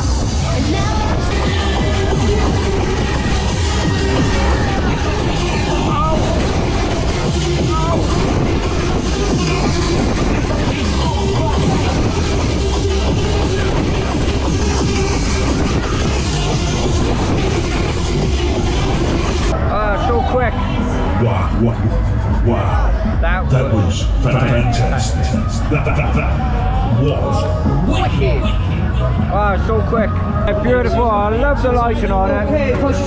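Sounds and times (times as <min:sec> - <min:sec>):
electronic fairground music: 0:00.0 - 0:33.0
steady rush of noise: 0:00.0 - 0:33.0
voices: 0:00.0 - 0:33.0.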